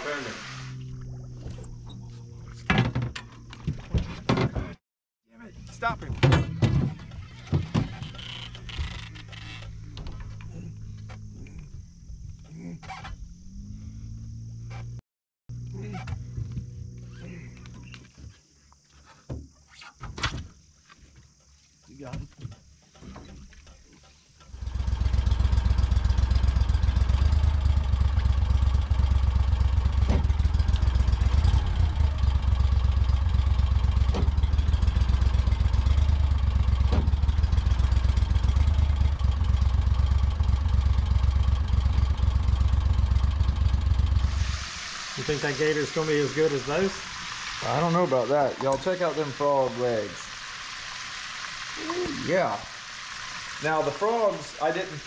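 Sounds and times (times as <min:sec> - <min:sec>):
boat engine droning: 0:00.0 - 0:03.6, 0:24.4 - 0:55.0
voices: 0:01.7 - 0:02.8, 0:45.2 - 0:50.4, 0:51.8 - 0:52.8, 0:53.6 - 0:55.0.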